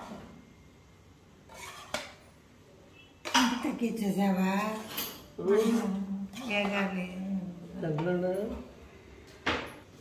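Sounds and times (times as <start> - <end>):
metal spatula scraping a pan: 1.4 - 2.2, 4.3 - 7.1.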